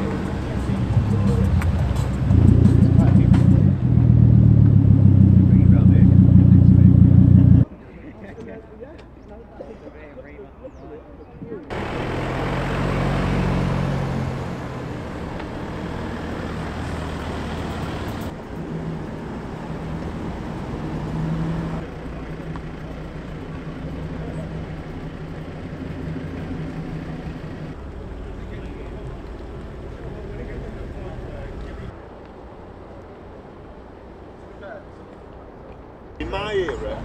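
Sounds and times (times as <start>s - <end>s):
car engines running at low speed: 0.0s - 7.7s, 11.6s - 37.0s.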